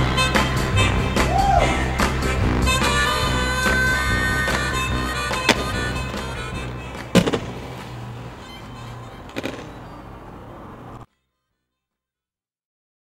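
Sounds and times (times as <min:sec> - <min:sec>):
background music: 0:00.0 - 0:11.0
inline skates landing on concrete: 0:04.4 - 0:08.6, 0:09.2 - 0:09.9.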